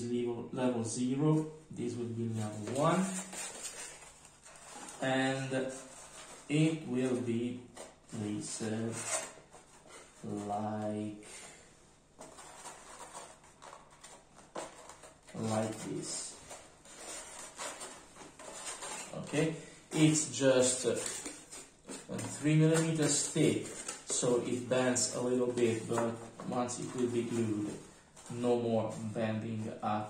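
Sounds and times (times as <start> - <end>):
board sheets rubbing and scraping: 12.2 - 29.8.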